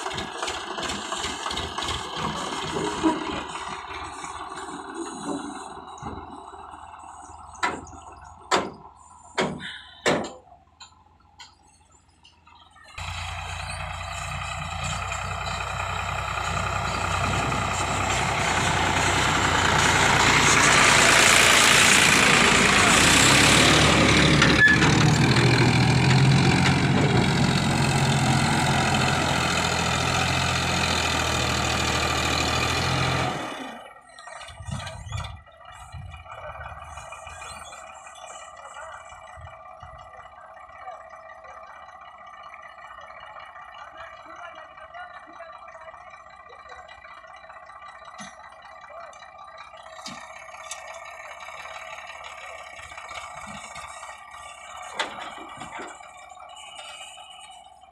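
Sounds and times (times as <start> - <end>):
tractor diesel engine: 0.0 - 57.9.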